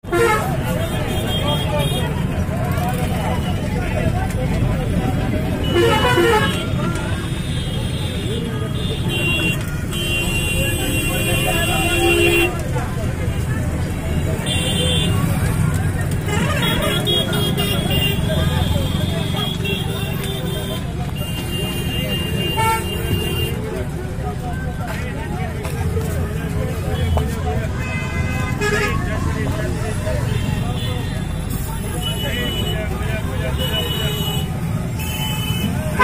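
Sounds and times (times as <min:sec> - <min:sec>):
vehicle horns sounding: 0:00.0 - 0:02.2, 0:05.5 - 0:12.7, 0:14.4 - 0:15.5, 0:16.2 - 0:23.8, 0:26.9 - 0:29.2, 0:30.2 - 0:36.0
bus engine and road rumble: 0:00.0 - 0:36.0.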